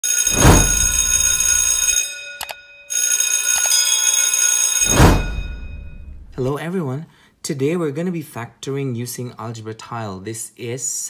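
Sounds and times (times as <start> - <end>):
bell-like ringing tones: 0.0 - 6.5
whoosh: 0.3 - 1.1, 4.9 - 6.5.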